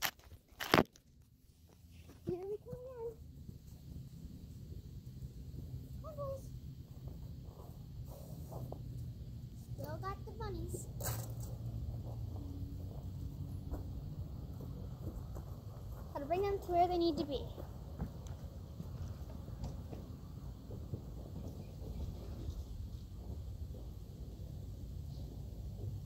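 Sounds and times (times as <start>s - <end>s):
low steady rumble: 1.1s - 26.0s.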